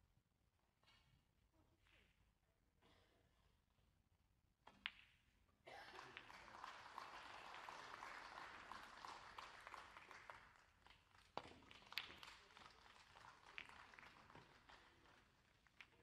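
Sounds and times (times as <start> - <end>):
applause: 5.7 - 16.0.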